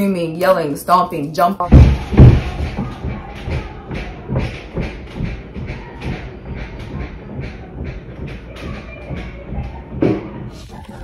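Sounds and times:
rhythmic thumping beat: 0:01.5 - 0:11.0.

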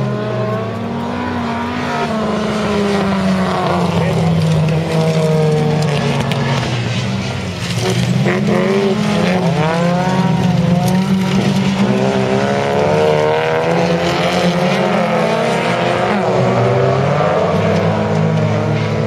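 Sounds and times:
racing car engines accelerating: 0:00.0 - 0:19.0.

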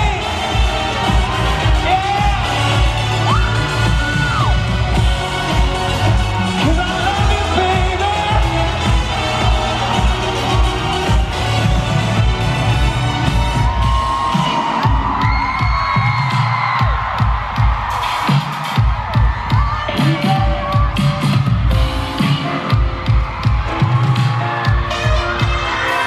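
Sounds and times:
thumping beat: 0:00.0 - 0:25.8
crowd screaming and cheering: 0:00.0 - 0:26.0
pop band playing through speakers: 0:00.0 - 0:26.0.

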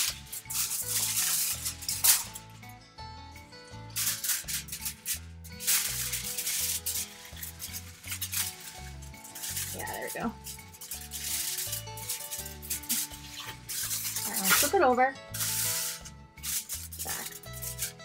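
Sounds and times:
aluminium foil crinkling: 0:00.0 - 0:02.6, 0:03.9 - 0:18.0
background music: 0:00.0 - 0:18.0.

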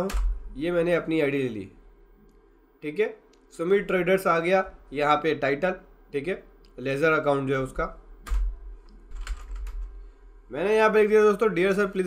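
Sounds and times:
computer keyboard typing: 0:08.2 - 0:08.5, 0:09.1 - 0:10.0.

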